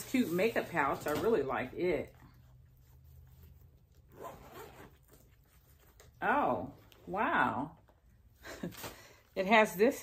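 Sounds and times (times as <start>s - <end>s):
zipper pulled open: 4.0s - 5.3s.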